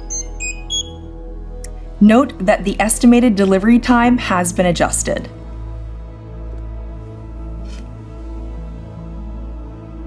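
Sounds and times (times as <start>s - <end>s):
short high electronic beeps: 0.0s - 1.0s
soft background music: 0.0s - 10.0s.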